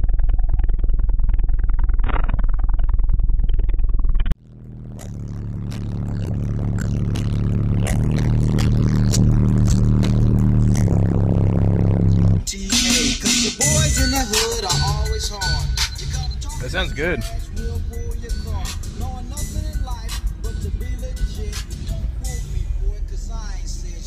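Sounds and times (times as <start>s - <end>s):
bass-heavy electronic music: 0.0s - 24.0s
hip-hop track: 5.0s - 11.0s, 12.4s - 24.0s.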